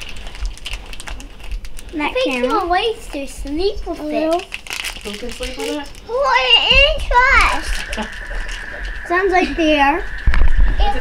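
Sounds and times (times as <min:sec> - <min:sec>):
low pulsing heartbeat sound: 0:06.7 - 0:11.0.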